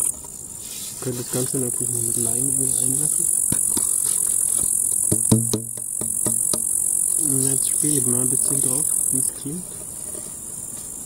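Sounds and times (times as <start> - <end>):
grasshoppers chirring: 0.0 - 11.0
knocks on wooden box didgeridoo: 5.0 - 6.8.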